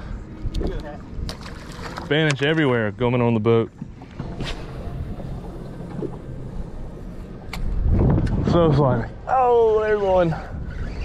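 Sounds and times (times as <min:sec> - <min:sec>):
outboard boat motor humming: 0:00.0 - 0:08.3
wind rumble on microphone: 0:04.2 - 0:11.0.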